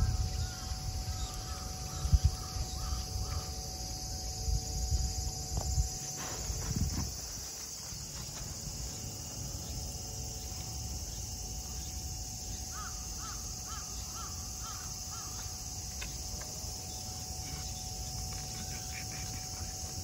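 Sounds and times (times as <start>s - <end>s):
high insect drone: 0.0s - 20.0s
crow-like caws: 0.4s - 3.6s, 12.7s - 15.6s.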